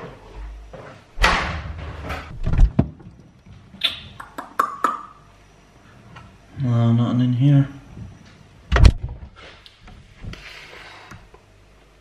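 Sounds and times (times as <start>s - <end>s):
refrigerator door opening: 1.2s - 3.0s, 8.7s - 9.2s.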